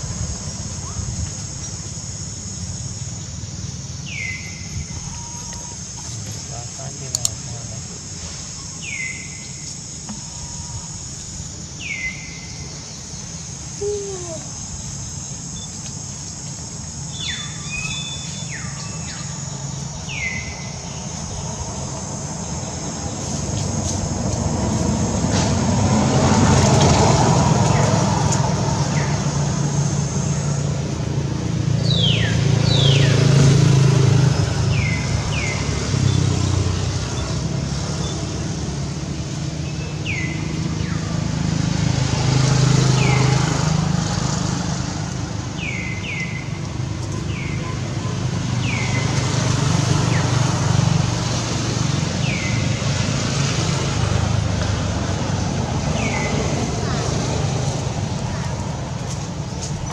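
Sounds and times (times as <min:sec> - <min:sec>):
high downward-sweeping chirps: 0:00.0 - 0:38.8
motor vehicles passing: 0:00.0 - 0:59.9
steady high buzz: 0:00.0 - 0:59.9.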